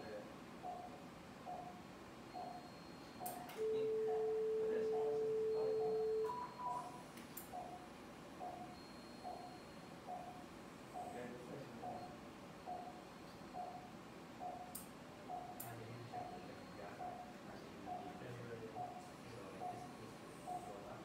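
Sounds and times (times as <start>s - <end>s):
generator steady tone: 0.0s - 21.0s
patient monitor pulse beep: 0.0s - 21.0s.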